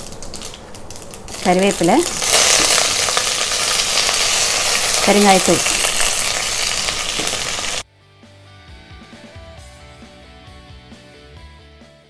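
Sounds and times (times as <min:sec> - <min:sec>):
oil sizzling in a pan: 0:00.0 - 0:07.8
soft instrumental music: 0:07.8 - 0:12.0.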